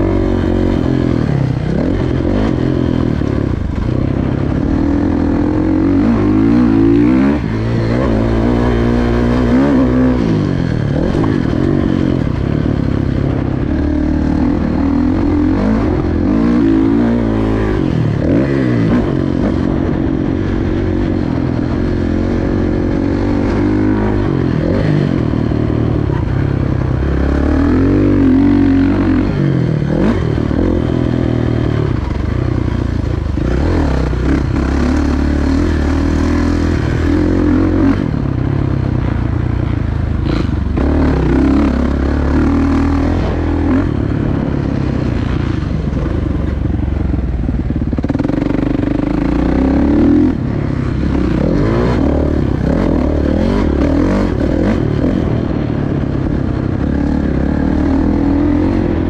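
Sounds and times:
motocross bike engine revving: 0:00.0 - 0:46.7, 0:47.6 - 0:59.0.

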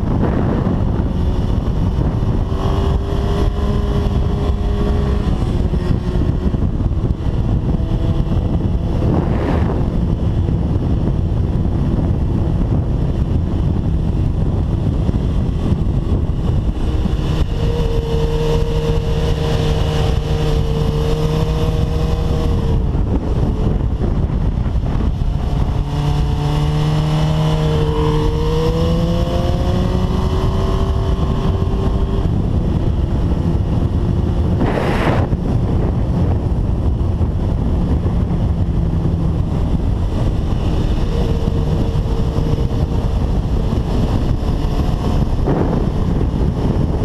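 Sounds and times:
motorcycle engine: 0:00.0 - 0:47.0
wind rush on microphone: 0:00.0 - 0:47.0.

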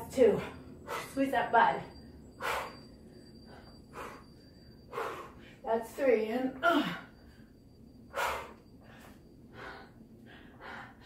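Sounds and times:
woman breathing forcefully: 0:00.3 - 0:01.2, 0:01.9 - 0:05.7, 0:06.7 - 0:11.0.

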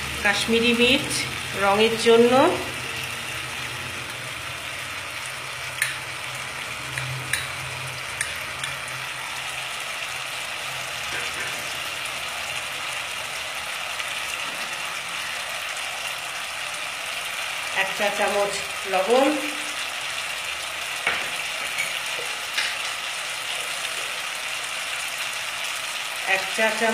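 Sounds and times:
onions frying in oil: 0:00.0 - 0:26.9.

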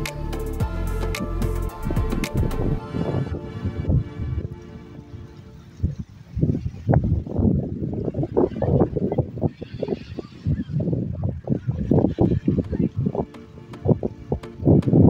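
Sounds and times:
background music: 0:00.0 - 0:06.0, 0:13.0 - 0:15.0
wind buffeting microphone: 0:01.8 - 0:15.0.

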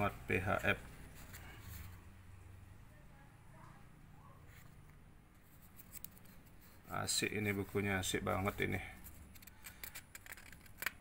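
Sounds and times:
book pages rustling: 0:00.8 - 0:02.1, 0:04.5 - 0:11.0.

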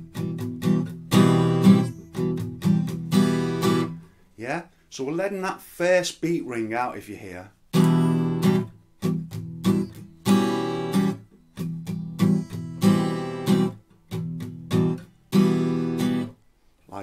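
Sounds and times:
acoustic guitar strumming: 0:00.0 - 0:04.2, 0:07.7 - 0:16.4.

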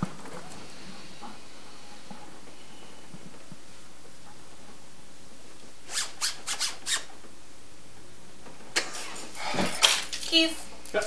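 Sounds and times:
zipper being zipped: 0:05.9 - 0:07.1.

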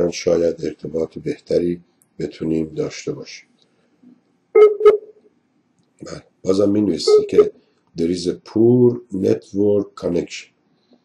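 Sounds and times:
short electronic beeps: 0:04.6 - 0:05.2, 0:07.1 - 0:07.5.

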